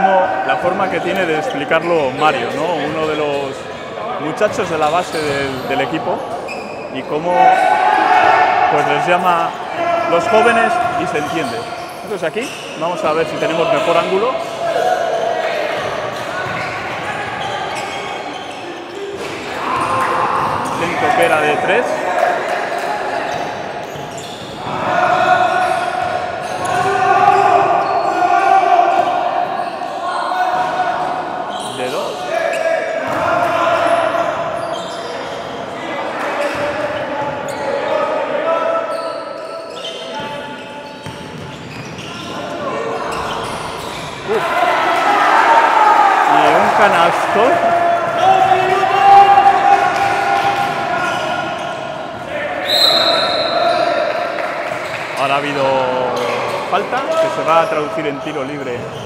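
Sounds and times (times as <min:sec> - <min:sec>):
people calling out: 0:13.6 - 0:41.0, 0:41.9 - 0:55.0.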